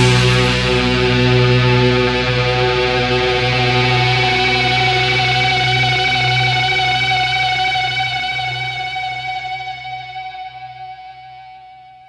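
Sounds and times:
low bass note: 0.0 - 10.9
electric guitar chord ringing: 0.0 - 12.0.

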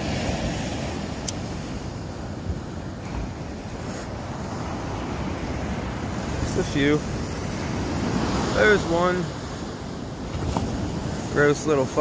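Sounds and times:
ocean surf: 0.0 - 12.0
wind rumbling on microphone: 0.0 - 12.0
sharp click: 1.2 - 1.4.

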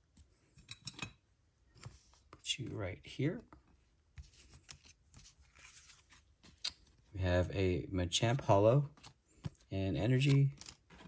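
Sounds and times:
rustle of cards and plastic sleeves: 4.2 - 7.1, 8.2 - 11.0.

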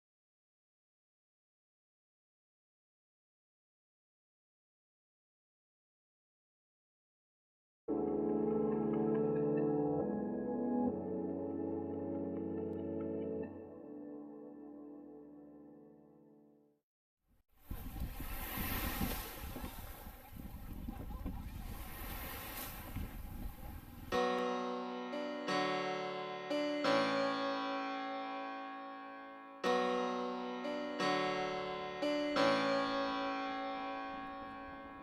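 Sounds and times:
small waves washing on beach: 17.6 - 24.1
plucked string music: 24.1 - 35.0.

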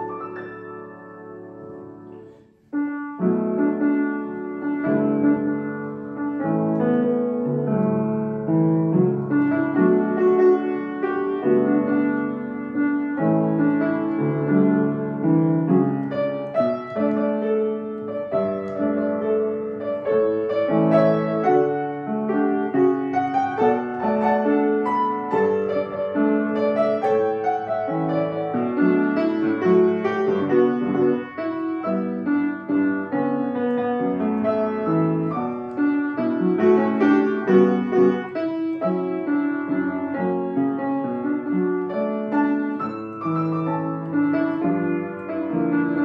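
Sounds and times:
upright piano playing: 0.0 - 46.0.

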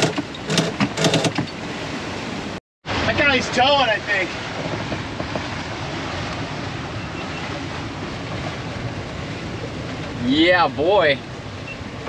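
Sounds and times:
winch ratcheting: 0.0 - 1.6
wind and water rushing: 0.0 - 12.0.

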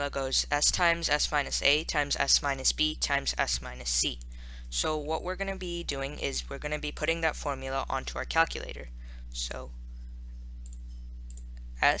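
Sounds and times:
low electrical hum: 0.0 - 12.0
computer mouse clicks: 10.6 - 11.6.

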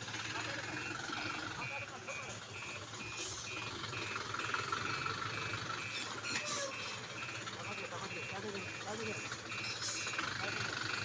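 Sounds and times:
truck engine running: 0.0 - 11.0
truck reversing alarm beeping: 0.0 - 11.0.

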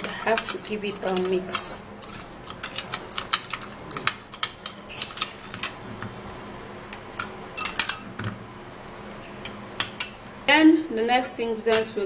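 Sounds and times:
spoon clinking against glass bowl: 11.7 - 12.0.

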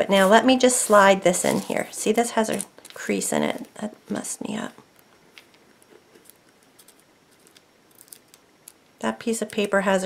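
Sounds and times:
glass pieces clicking on paper: 6.2 - 8.8.

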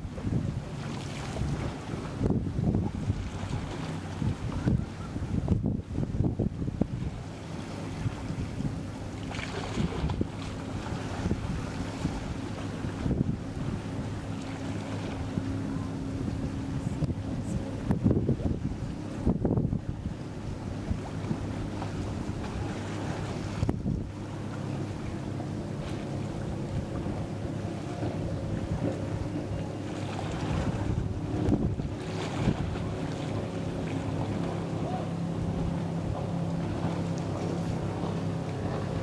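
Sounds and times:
motorboat engine droning: 0.0 - 39.0
wind gusting on microphone: 0.0 - 39.0.

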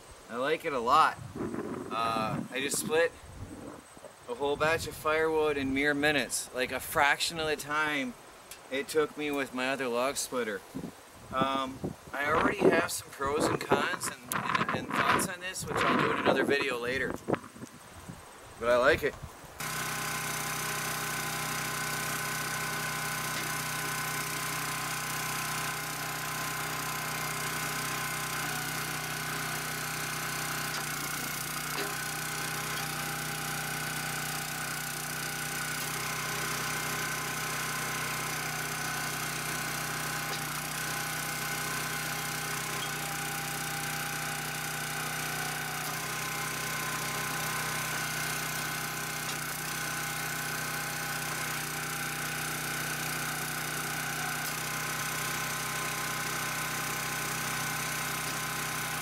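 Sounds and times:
small gasoline engine running: 19.6 - 59.0.

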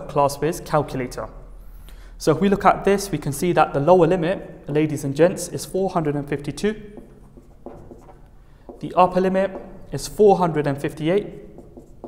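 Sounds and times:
marker scratching on whiteboard: 6.8 - 12.0.

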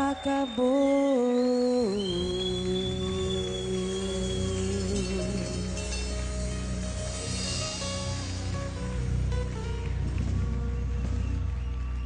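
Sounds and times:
woman singing long note: 0.0 - 6.3.

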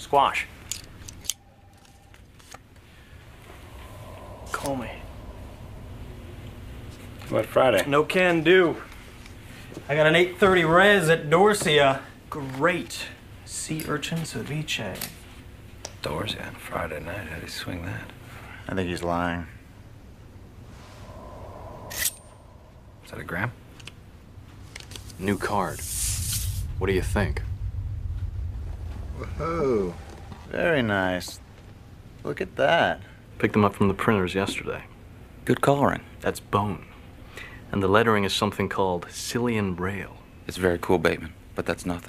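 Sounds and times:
faint steady hum: 0.0 - 42.0.

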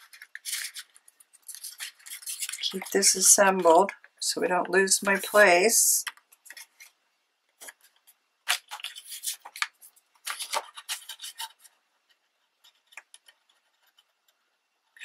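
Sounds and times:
paper sheets rustling and sliding: 7.6 - 11.8.

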